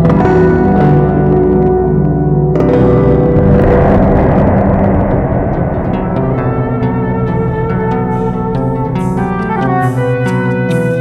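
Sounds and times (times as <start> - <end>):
rumbling wash of noise: 2.8 - 9.9.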